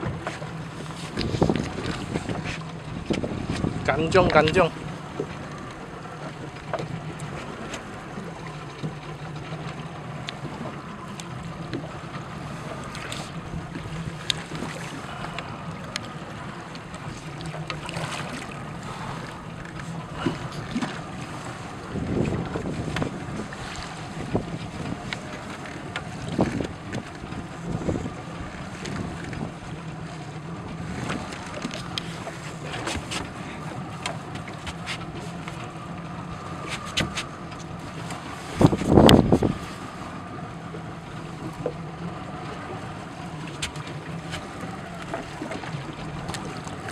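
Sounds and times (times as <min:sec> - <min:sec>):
boat engine humming: 0:00.0 - 0:46.9
wind and water noise: 0:00.0 - 0:46.9.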